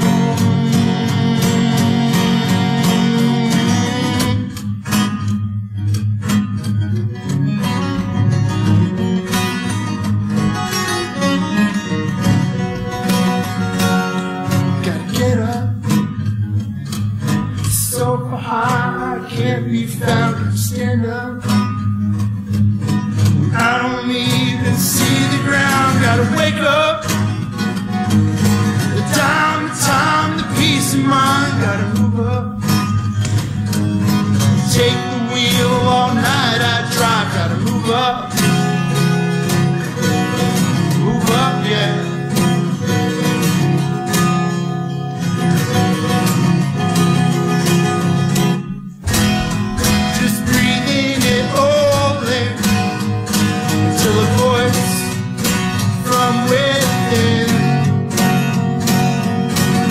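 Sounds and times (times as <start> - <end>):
man singing: 0.0 - 4.6, 14.5 - 16.1, 17.6 - 21.8, 23.4 - 27.5, 28.8 - 33.0, 34.4 - 39.2, 40.7 - 42.8, 49.6 - 58.5
strummed acoustic guitar: 0.0 - 59.9.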